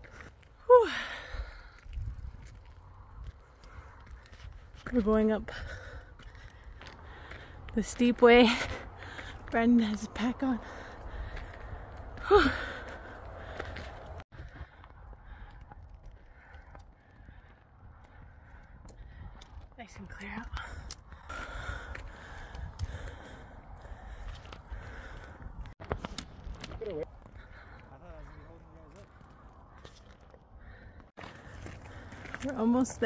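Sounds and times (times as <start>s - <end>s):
footsteps on dirt trail: 0.0s - 33.0s
wind buffeting microphone: 0.0s - 33.0s
woman sighing: 0.7s - 1.6s, 12.2s - 13.1s.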